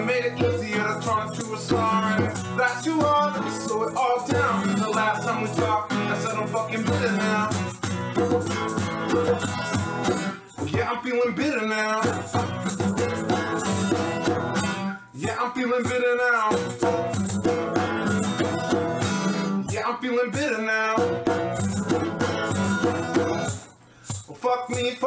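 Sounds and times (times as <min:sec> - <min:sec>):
person singing: 0:00.0 - 0:07.7, 0:10.5 - 0:12.4, 0:19.2 - 0:21.2
maraca shaking: 0:00.0 - 0:11.1, 0:12.0 - 0:25.0
acoustic guitar strumming: 0:00.0 - 0:25.0.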